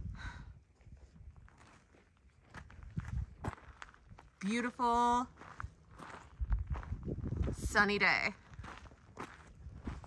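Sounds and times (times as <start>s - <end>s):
footsteps on gravel path: 0.7s - 10.0s.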